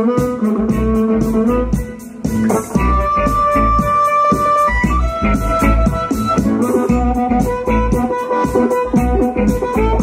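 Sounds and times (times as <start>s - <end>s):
harmonica long held notes: 0.0s - 10.0s
live blues band playing: 0.0s - 10.0s.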